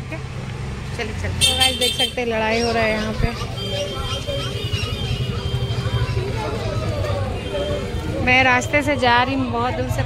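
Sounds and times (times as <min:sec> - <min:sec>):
low rumble of traffic: 0:00.0 - 0:10.0
people quarrelling: 0:02.5 - 0:08.6.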